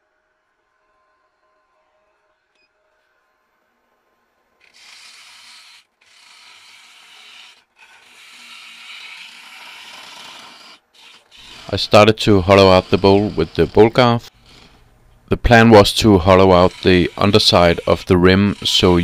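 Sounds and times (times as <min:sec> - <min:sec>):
gouge cutting wood on lathe: 0:04.6 - 0:14.8, 0:15.5 - 0:19.0.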